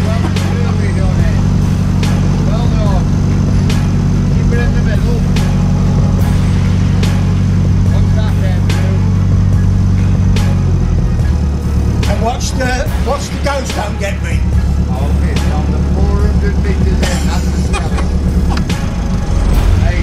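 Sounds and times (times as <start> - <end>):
boat diesel engine running: 0.0 - 20.0.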